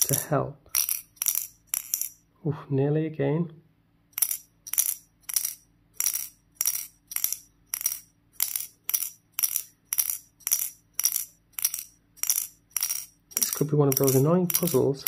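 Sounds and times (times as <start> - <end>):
metal ball rattling in metal cone: 0.0 - 2.3, 4.1 - 15.0.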